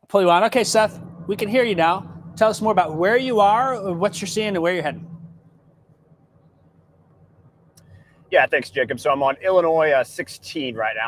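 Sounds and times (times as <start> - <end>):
vehicle cabin rumble and hum: 0.1 - 11.0.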